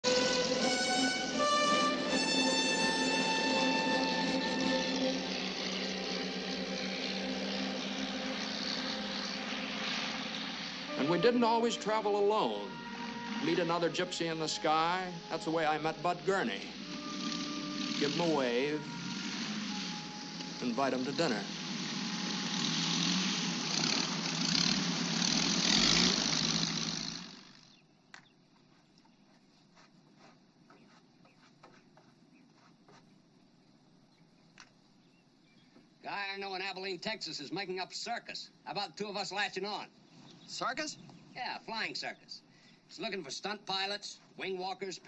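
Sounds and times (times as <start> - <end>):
orchestral music: 0.0 - 25.3
propeller airplane engine droning: 0.0 - 28.4.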